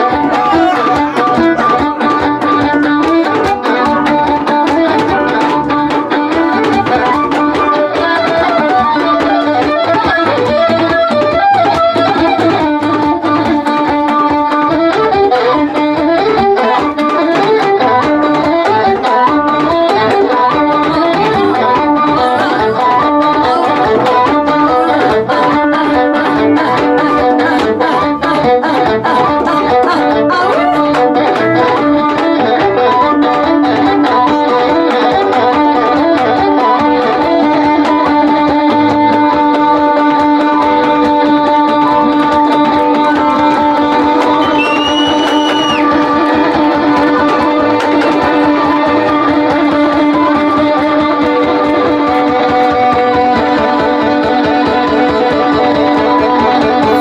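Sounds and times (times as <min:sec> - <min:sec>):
held drone note: 0:00.0 - 0:11.4
flute melody: 0:00.0 - 0:25.6, 0:30.2 - 0:38.9, 0:39.6 - 0:57.0
hand drums: 0:00.0 - 0:57.0
stringed instrument: 0:00.0 - 0:57.0.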